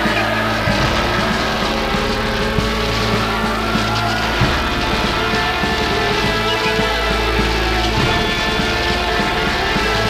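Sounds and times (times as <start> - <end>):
synthesizer drone: 0.0 - 10.0
throbbing low rumble: 0.0 - 10.0.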